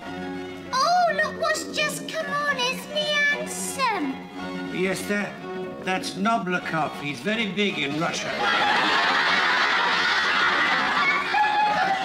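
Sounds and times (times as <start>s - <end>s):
orchestral ballet music: 0.0s - 8.5s.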